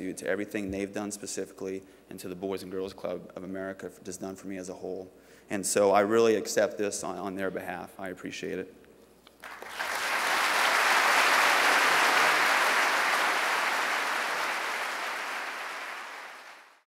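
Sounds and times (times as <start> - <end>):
audience applauding: 9.4 - 16.8.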